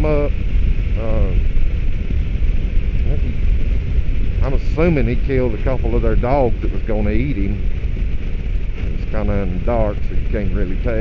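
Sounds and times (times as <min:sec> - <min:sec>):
motorcycle engine running: 0:00.0 - 0:11.0
wind rushing over microphone: 0:00.0 - 0:11.0.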